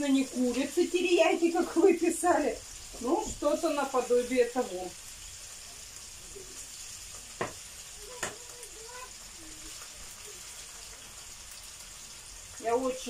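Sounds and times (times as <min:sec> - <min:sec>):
meat sizzling in hot oil: 0:00.0 - 0:13.0.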